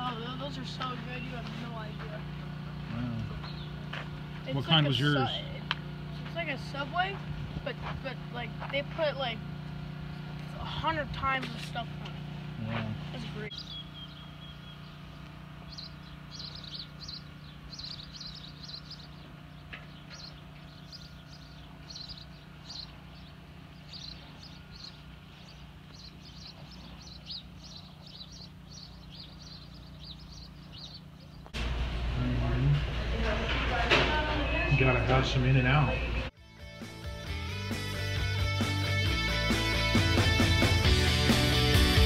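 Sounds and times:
voices: 0:00.0 - 0:13.7, 0:31.0 - 0:36.3
small birds chirping: 0:00.0 - 0:31.6
steady low hum: 0:00.0 - 0:36.4
background music: 0:36.4 - 0:42.0.

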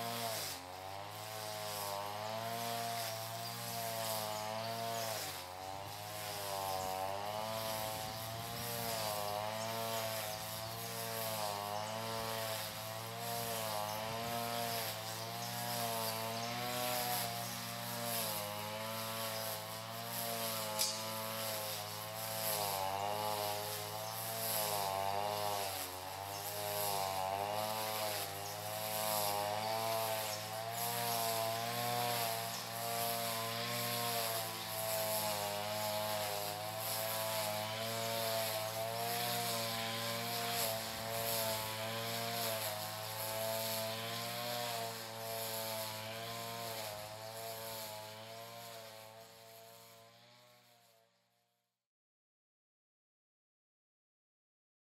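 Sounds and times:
string trimmer running: 0:00.0 - 0:51.7.

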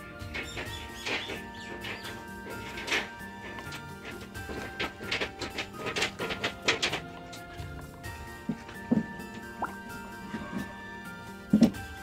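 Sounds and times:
background music: 0:00.0 - 0:12.0
water plops and drips: 0:09.5 - 0:09.8.

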